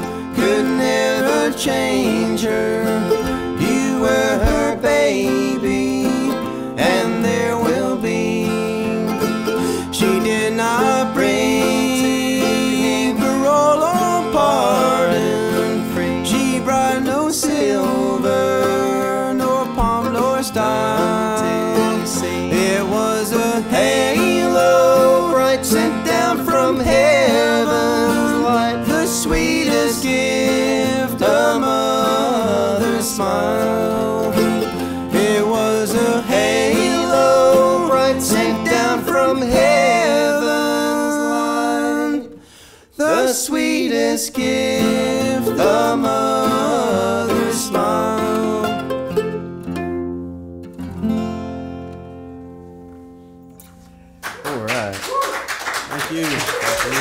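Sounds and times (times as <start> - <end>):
acoustic guitar and mandolin playing: 0.0 - 54.2.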